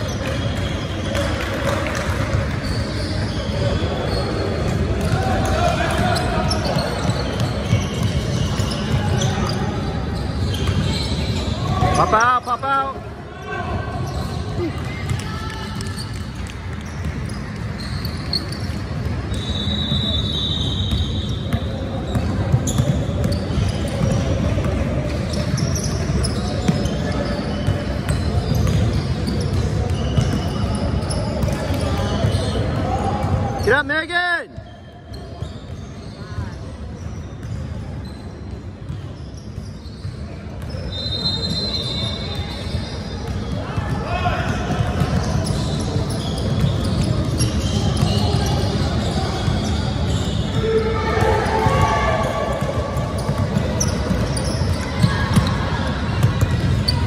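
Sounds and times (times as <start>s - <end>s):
echoing voices in hall: 0.0s - 17.6s, 43.2s - 57.0s.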